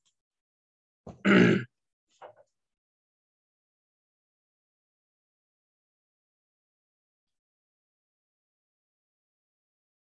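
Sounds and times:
man grunting: 1.3 - 1.7.

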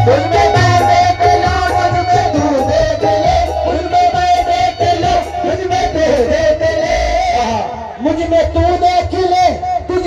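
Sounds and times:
men singing together: 0.0 - 8.0
crowd noise: 0.0 - 10.0.

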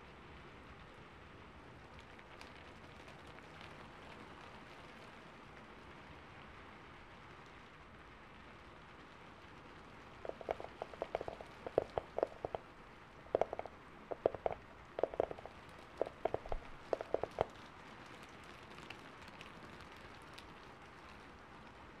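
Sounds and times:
soft steady hiss: 0.0 - 22.0
short low-pitched taps: 10.3 - 12.6, 13.3 - 17.5.

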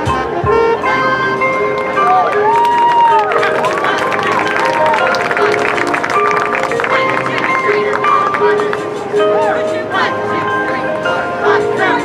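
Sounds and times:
brass and wind notes: 0.0 - 12.0.

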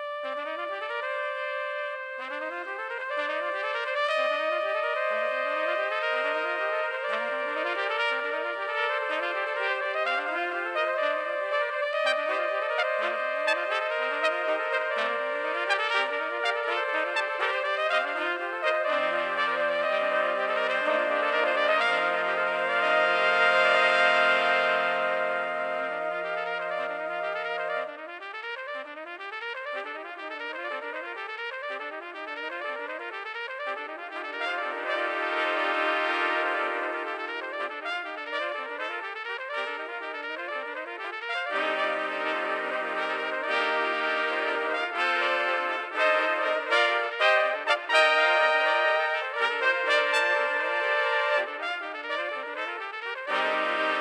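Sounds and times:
trumpet fanfare: 0.0 - 54.0.

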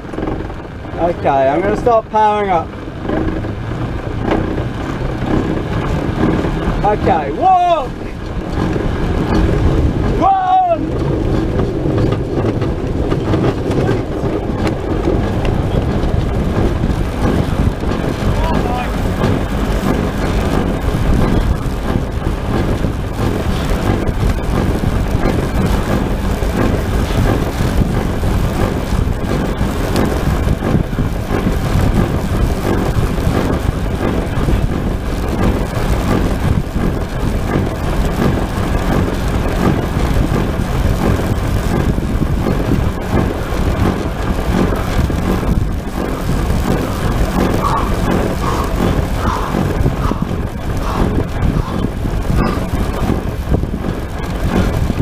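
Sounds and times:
airflow rushing in cockpit: 0.0 - 55.0
pedal drive: 7.9 - 55.0.

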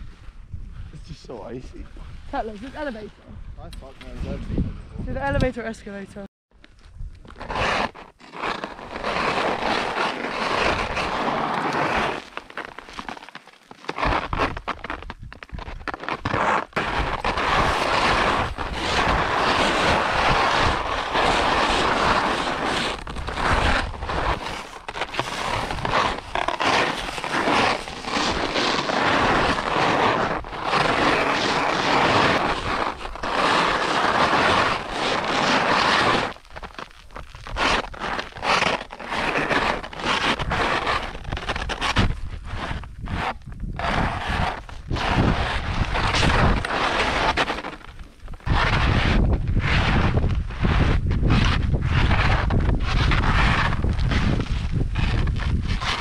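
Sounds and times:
skis scraping on icy snow: 7.3 - 56.0.

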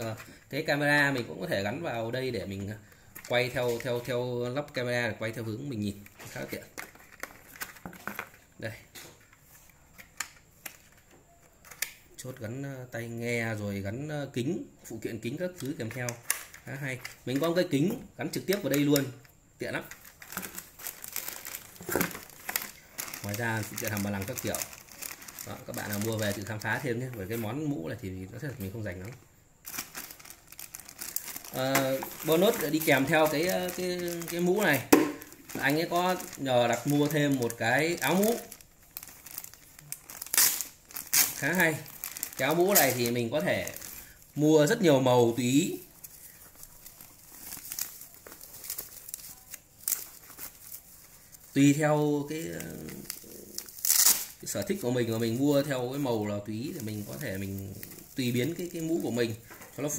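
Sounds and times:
plastic packaging crinkling: 0.0 - 8.6, 15.4 - 59.9.

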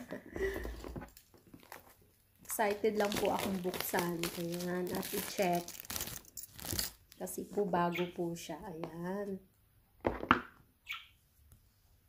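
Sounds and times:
paper rustling: 2.6 - 7.1.

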